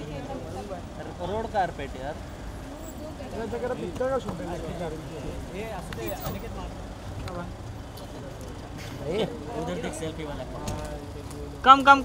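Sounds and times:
low rumble of vehicles: 0:00.0 - 0:12.0.

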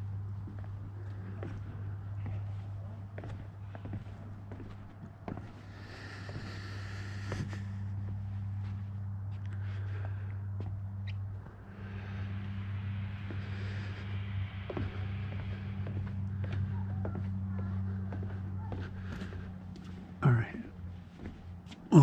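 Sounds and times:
footsteps on wooden deck: 0:00.0 - 0:22.0
steady low hum: 0:00.0 - 0:22.0.

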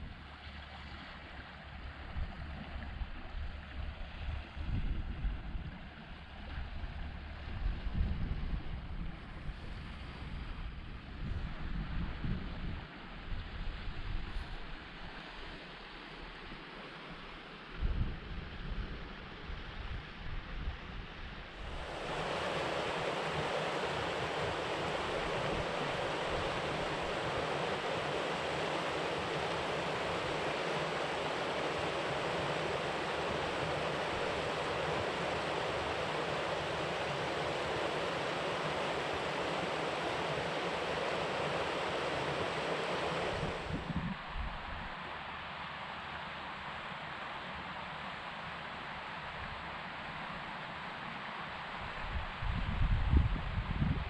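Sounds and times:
wind buffeting microphone: 0:02.1 - 0:06.0, 0:06.6 - 0:12.8, 0:17.8 - 0:44.9, 0:51.9 - 0:54.0
steady rushing hiss: 0:21.5 - 0:52.5.

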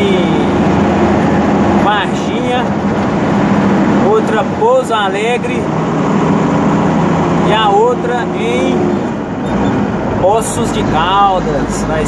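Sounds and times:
road noise: 0:00.0 - 0:12.0
truck engine running: 0:00.0 - 0:12.0.

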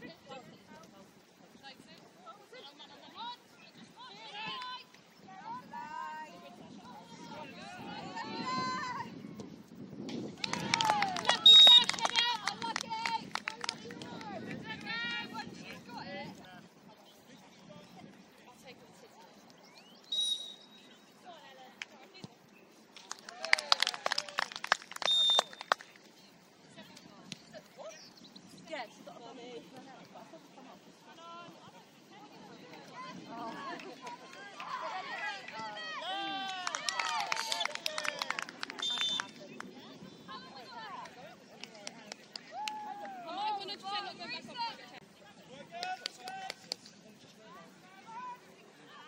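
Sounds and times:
voices shouting and cheering: 0:02.3 - 0:09.4, 0:10.1 - 0:19.5, 0:23.0 - 0:25.8, 0:28.6 - 0:46.8, 0:47.4 - 0:49.0
women shouting and calling: 0:04.0 - 0:09.2, 0:33.0 - 0:37.4, 0:42.5 - 0:44.9
sharp claps: 0:10.1 - 0:14.9, 0:23.0 - 0:26.1, 0:36.4 - 0:39.7, 0:45.7 - 0:47.0
whistle blast: 0:11.4 - 0:12.0, 0:20.1 - 0:20.8, 0:25.1 - 0:25.6, 0:38.8 - 0:39.4.

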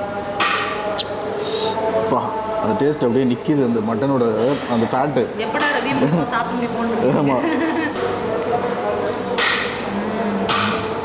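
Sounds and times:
sharp knocks: 0:09.4 - 0:09.8, 0:10.5 - 0:10.9.

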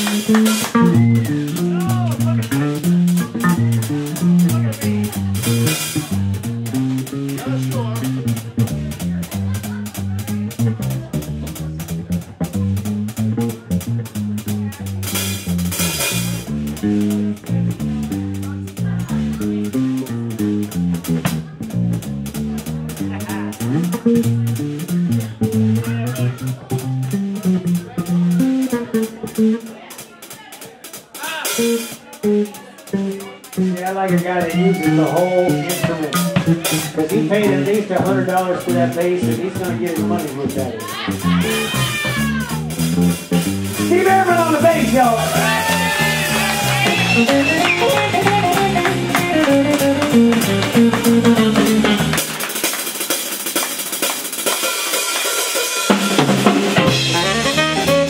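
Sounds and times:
plucked electric bass notes: 0:00.0 - 0:29.9, 0:31.4 - 0:52.3, 0:55.9 - 0:58.0
drums keeping time on cymbals: 0:00.0 - 0:58.0.

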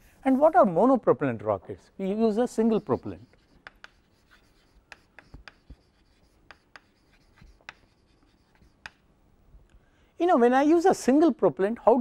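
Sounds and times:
chalk writing on chalkboard: 0:02.4 - 0:09.0.

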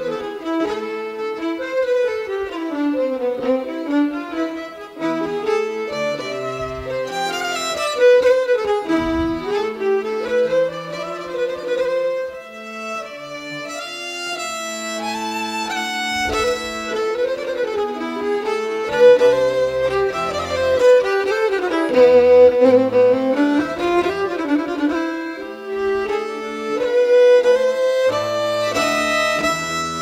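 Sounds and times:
fiddle melody: 0:00.0 - 0:30.0
string accompaniment: 0:00.0 - 0:30.0.

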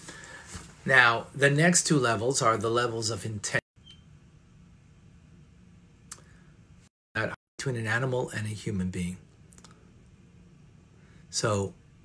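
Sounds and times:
man speaking: 0:07.2 - 0:09.2, 0:11.3 - 0:11.8.

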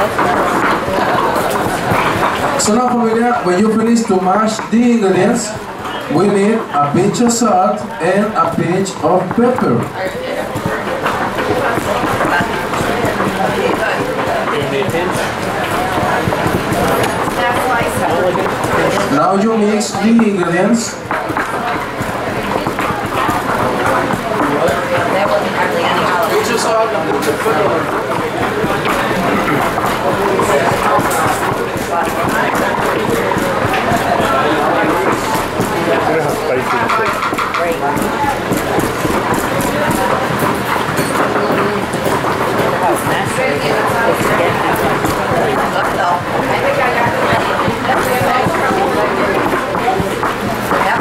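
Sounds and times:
people talking at once: 0:00.0 - 0:51.0.

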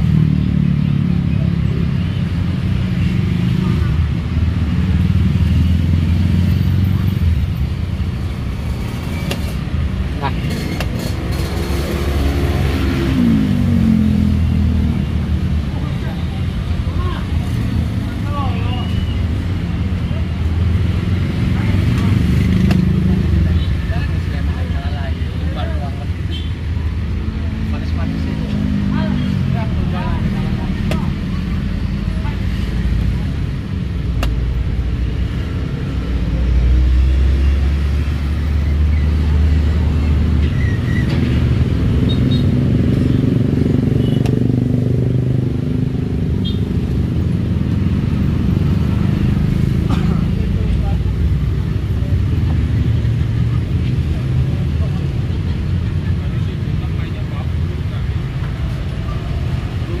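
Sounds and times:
motor traffic rumble: 0:00.0 - 1:00.0
people's voices: 0:15.6 - 0:37.0, 0:48.8 - 1:00.0.

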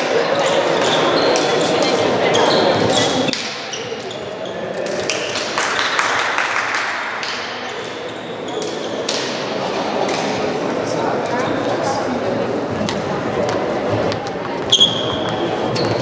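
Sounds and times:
voices echoing in sports hall: 0:00.0 - 0:16.0.

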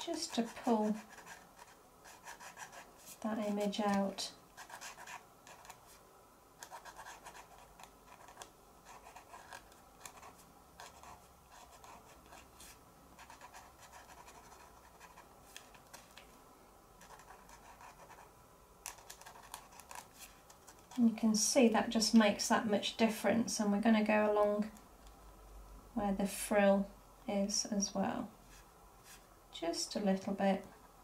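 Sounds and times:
paint pen scratching on card: 0:00.0 - 0:06.0, 0:06.6 - 0:16.1, 0:17.0 - 0:18.2, 0:18.8 - 0:21.0.

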